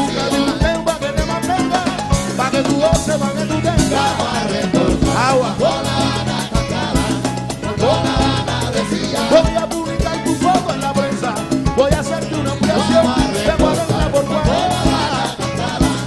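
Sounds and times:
bending melody line: 0:00.0 - 0:16.0
salsa band playing live: 0:00.0 - 0:16.0.

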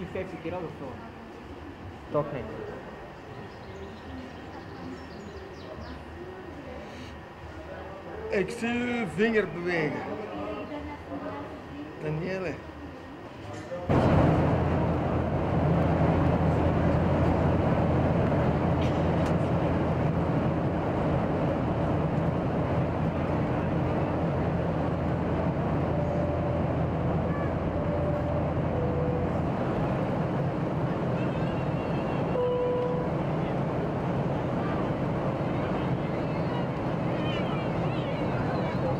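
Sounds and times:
jet engines roaring: 0:13.9 - 0:38.9
rushing air in cabin: 0:13.9 - 0:38.9.

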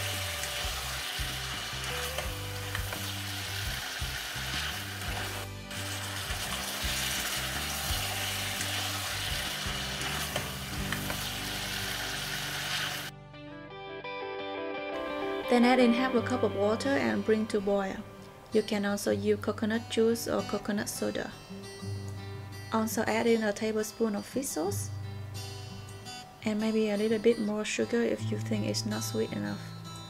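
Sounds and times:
ribs sizzling in a saucepan: 0:00.0 - 0:13.1
soft background music: 0:00.0 - 0:30.0.

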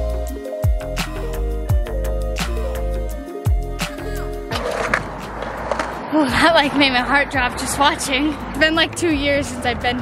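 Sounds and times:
background music: 0:00.0 - 0:10.0
skateboard wheels rolling on concrete: 0:04.5 - 0:10.0.

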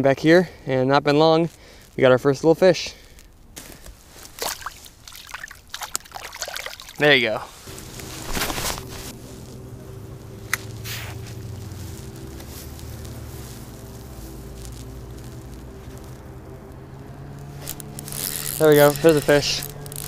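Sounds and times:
brief rustle: 0:07.5 - 0:09.6, 0:10.5 - 0:16.2
outboard motor humming: 0:07.6 - 0:20.0.

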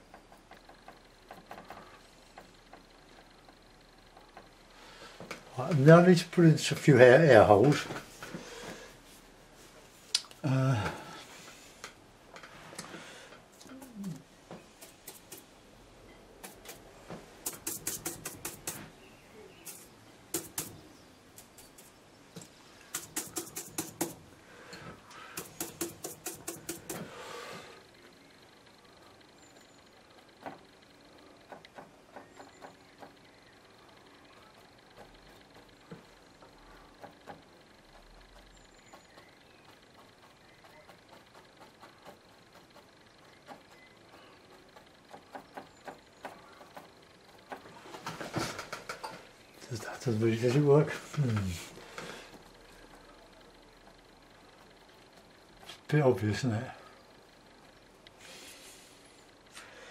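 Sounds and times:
paintbrush tapping: 0:17.4 - 0:18.8, 0:19.7 - 0:24.2, 0:25.4 - 0:27.0.

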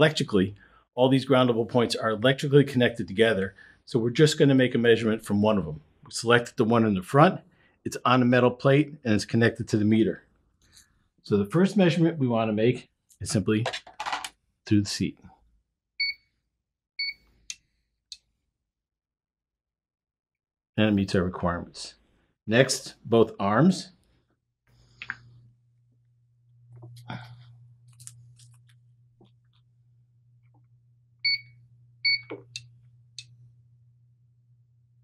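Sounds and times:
short meter beeps: 0:16.0 - 0:16.3, 0:17.0 - 0:17.2, 0:31.2 - 0:32.6.

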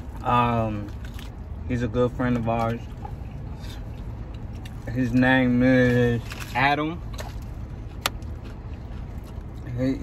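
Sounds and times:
low rumble inside car cabin: 0:00.0 - 0:10.0.

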